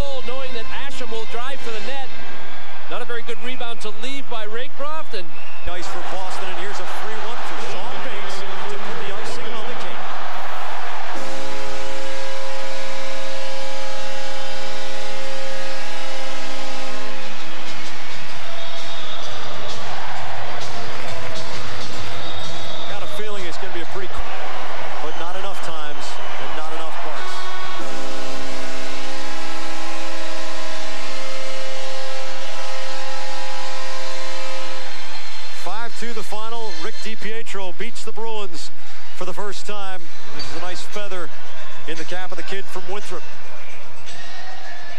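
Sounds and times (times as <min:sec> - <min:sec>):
goal horn blaring: 0:00.0 - 0:03.4, 0:05.7 - 0:37.7
crowd cheering: 0:00.0 - 0:37.7, 0:39.3 - 0:44.9.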